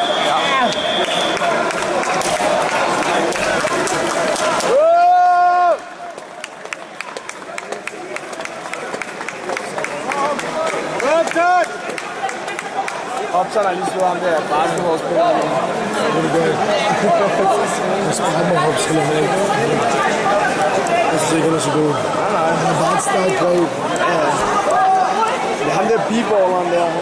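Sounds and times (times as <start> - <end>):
overlapping chatter: 0.0 - 27.0.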